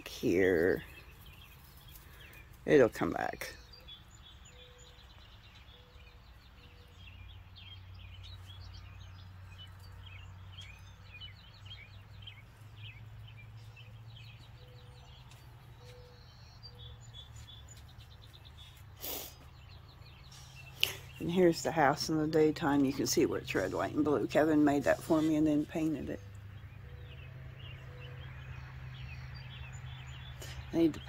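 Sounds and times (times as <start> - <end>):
birds chirping and singing: 0.0 - 31.0
low outdoor hum: 0.0 - 31.0.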